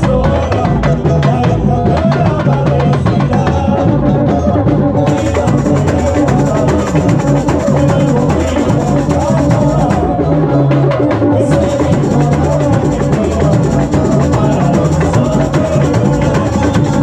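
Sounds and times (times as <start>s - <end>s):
drum section playing fast rhythm: 0.0s - 17.0s.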